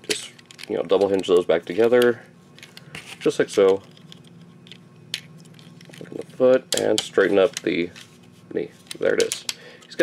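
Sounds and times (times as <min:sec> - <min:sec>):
plastic toy parts handled: 0:00.0 - 0:08.1
faint steady hum: 0:00.0 - 0:10.0.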